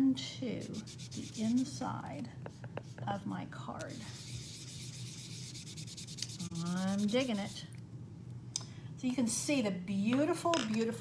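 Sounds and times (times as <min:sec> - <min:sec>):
sponge rubbing chalk on paper: 0:00.6 - 0:03.2, 0:03.8 - 0:07.7.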